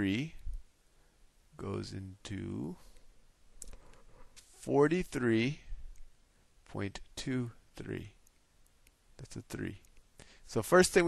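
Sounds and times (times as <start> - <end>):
man speaking: 0.0 - 0.4, 1.6 - 2.9, 4.6 - 5.7, 6.7 - 8.2, 9.2 - 9.9, 10.5 - 11.0.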